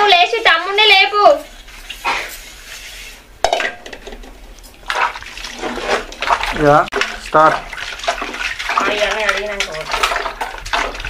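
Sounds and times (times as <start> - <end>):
steel pots clanking: 3.0 - 11.0.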